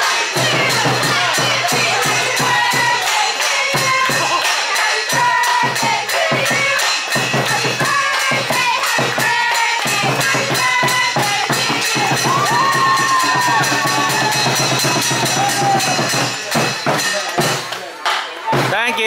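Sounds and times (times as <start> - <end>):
crowd clapping and cheering: 0.0 - 16.6
cymbals and drum beat: 0.0 - 19.0.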